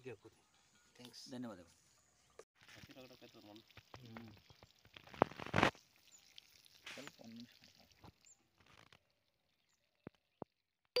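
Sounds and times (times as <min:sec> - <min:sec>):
water splashing onto soil: 0:02.6 - 0:10.4.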